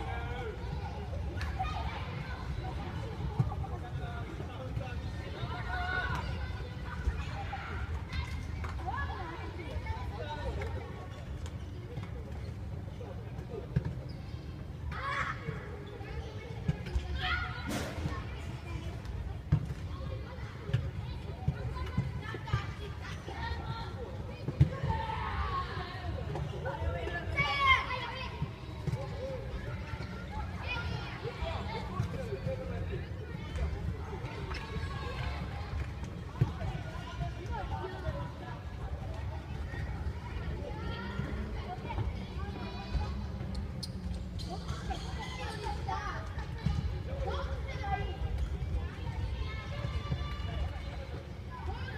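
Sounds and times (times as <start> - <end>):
faint indistinct voices: 0.0 - 51.9.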